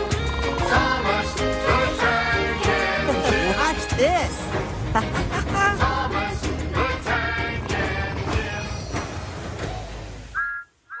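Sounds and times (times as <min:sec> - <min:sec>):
background music: 0:00.0 - 0:10.6
two-tone whistle toots: 0:10.3 - 0:11.0.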